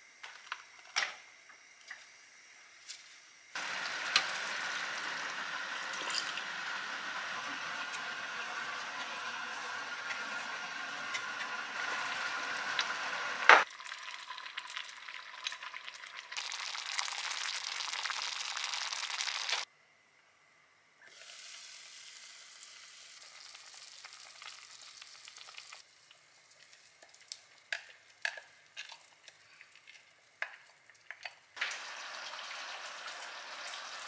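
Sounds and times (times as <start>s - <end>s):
porridge simmering and bubbling: 3.5s - 19.7s, 21.1s - 34.0s.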